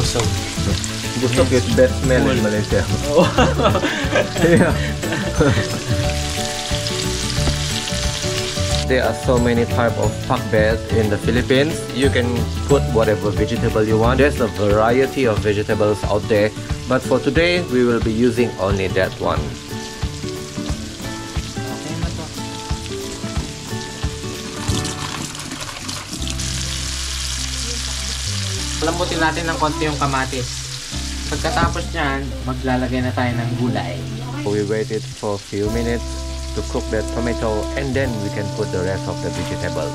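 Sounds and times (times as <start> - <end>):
background music with bass line: 0.0 - 25.2, 26.2 - 39.9
food sizzling in oil: 0.0 - 39.9.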